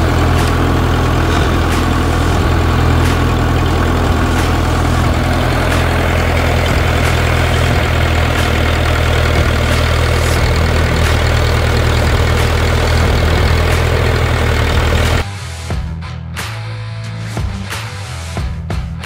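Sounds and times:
tractor diesel engine running: 0:00.0 - 0:15.2.

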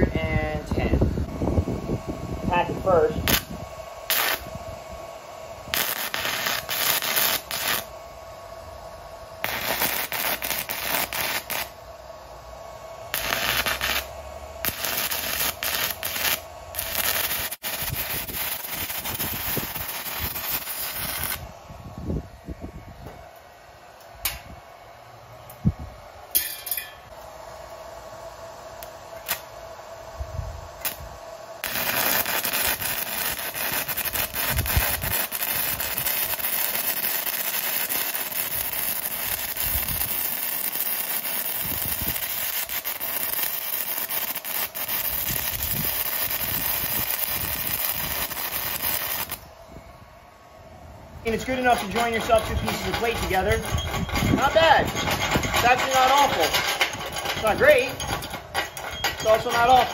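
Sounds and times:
welding arc crackling and sizzling: 0:02.5 - 0:08.2, 0:08.9 - 0:12.0, 0:12.7 - 0:21.6, 0:28.7 - 0:29.7, 0:30.3 - 0:49.5, 0:51.2 - 0:59.9.

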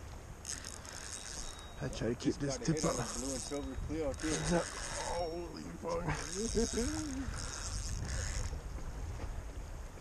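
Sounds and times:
fishing reel ratcheting: 0:00.4 - 0:01.9, 0:02.7 - 0:08.6.

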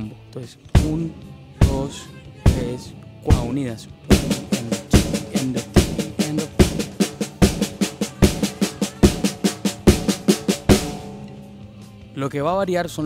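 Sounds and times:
snare drum notes: 0:00.8 - 0:12.0
bass drum beats: 0:00.8 - 0:12.2.

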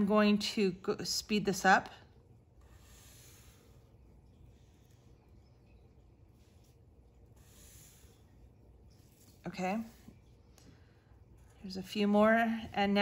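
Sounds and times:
marker strokes on paper: 0:02.5 - 0:10.6.

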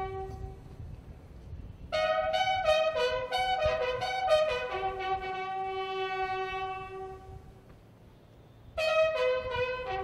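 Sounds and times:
bugle long low note: 0:00.0 - 0:00.7, 0:01.9 - 0:07.5, 0:08.4 - 0:10.0.

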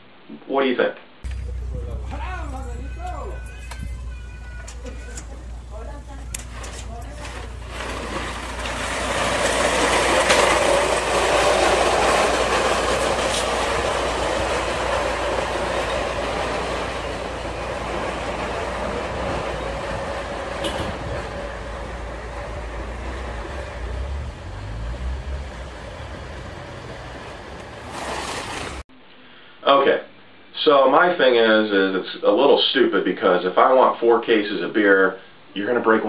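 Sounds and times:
bottle crates rattling down pavement: 0:01.3 - 0:28.8.

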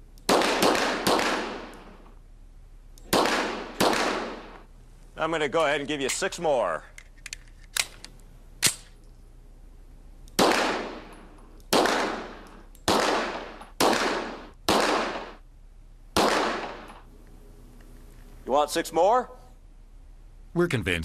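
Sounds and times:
pistol shots ringing: 0:00.3 - 0:02.0, 0:03.1 - 0:04.6, 0:10.4 - 0:15.4, 0:16.2 - 0:17.1.

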